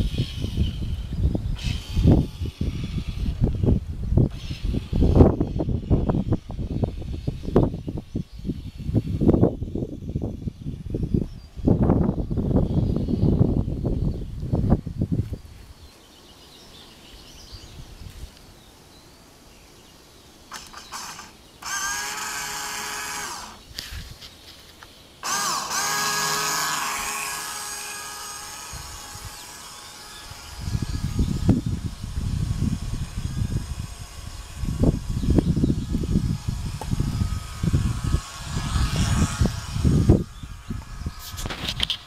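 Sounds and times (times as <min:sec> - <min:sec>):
motor whining: 0:00.0 - 0:10.7, 0:20.5 - 0:24.1, 0:25.2 - 0:42.0
wind rumble on microphone: 0:00.0 - 0:18.6, 0:28.3 - 0:42.0.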